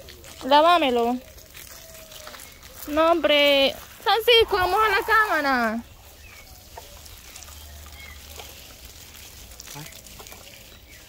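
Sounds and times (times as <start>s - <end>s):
garden hose spraying water: 0.0s - 11.0s.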